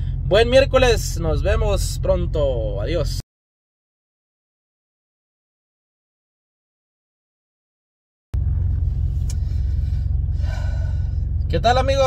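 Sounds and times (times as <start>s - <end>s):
car engine idling: 0.0s - 3.2s, 8.4s - 12.0s.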